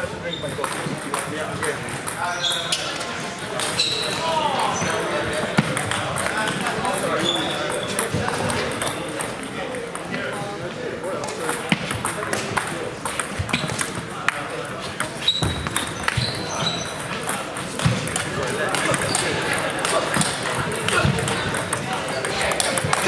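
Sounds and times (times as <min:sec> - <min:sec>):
background chatter of voices: 0:00.0 - 0:23.0
table tennis balls clicking: 0:00.3 - 0:10.4, 0:11.2 - 0:23.0.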